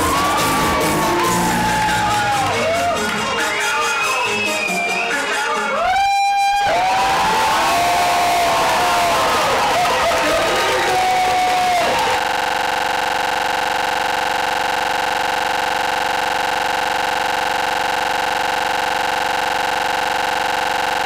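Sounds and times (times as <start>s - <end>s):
crowd cheering: 0.0s - 12.3s
steady electronic buzz: 12.0s - 21.0s.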